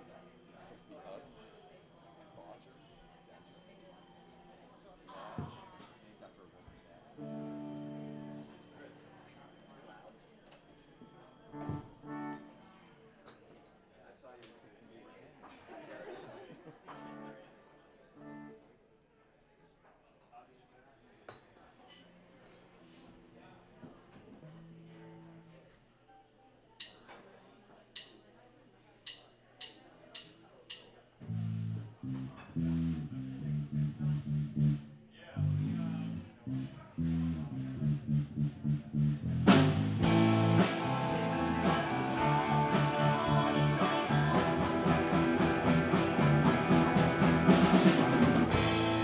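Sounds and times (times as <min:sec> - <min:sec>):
bass guitar riff: 0:07.2 - 0:08.5, 0:31.2 - 0:49.0
electric guitars: 0:07.2 - 0:08.8, 0:39.3 - 0:49.0
drum kit: 0:31.2 - 0:34.8, 0:35.4 - 0:49.0
amp hum: 0:31.2 - 0:49.0.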